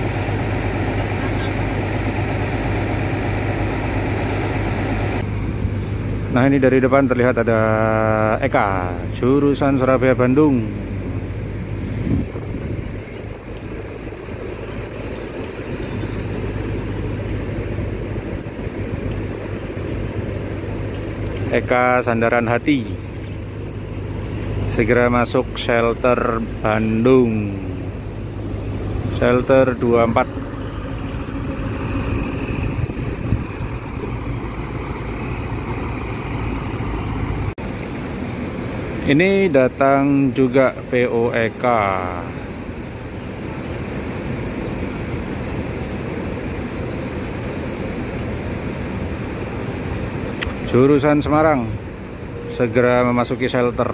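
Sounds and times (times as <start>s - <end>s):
bus driving slowly: 0.0s - 53.9s
diesel bus engines idling: 0.0s - 53.9s.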